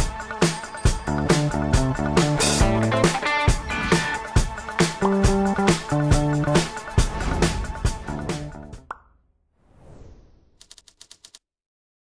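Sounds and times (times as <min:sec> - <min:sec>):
background music: 0:00.0 - 0:09.0.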